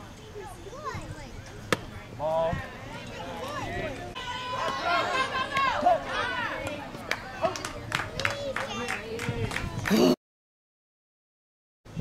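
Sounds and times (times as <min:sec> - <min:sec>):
girls calling and cheering: 0:02.7 - 0:09.9.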